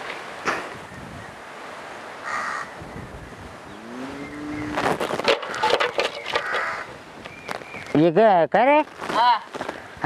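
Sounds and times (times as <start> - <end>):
faint outdoor background noise: 0.0 - 10.0
crow cawing: 2.2 - 2.8, 5.4 - 7.0.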